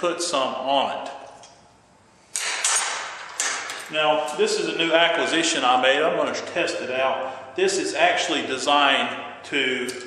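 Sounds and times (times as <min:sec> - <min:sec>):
metal clamps clanking: 0:02.4 - 0:04.4.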